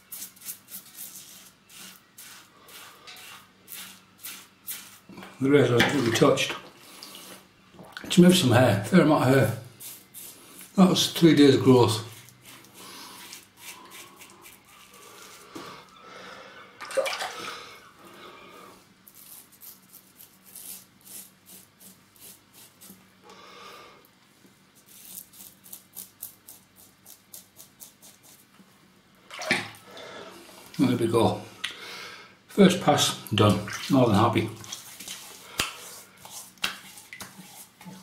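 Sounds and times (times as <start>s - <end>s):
razor scraping stubble: 0.0s - 5.3s, 9.2s - 15.6s, 19.1s - 23.0s, 24.8s - 28.5s.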